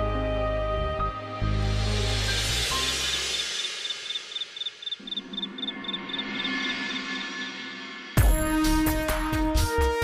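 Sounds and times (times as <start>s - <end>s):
crickets chirping: 2.7s - 7.6s.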